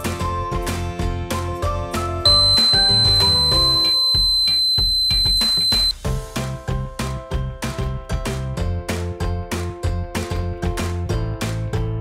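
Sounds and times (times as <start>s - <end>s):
background music with beat: 2.0s - 12.0s
high-pitched alarm buzzer: 2.3s - 5.9s.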